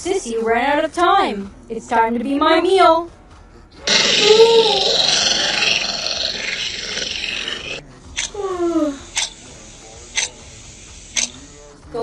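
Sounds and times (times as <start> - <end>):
short falling vocal sound: 3.8 - 7.8
beast growling: 3.8 - 8.4.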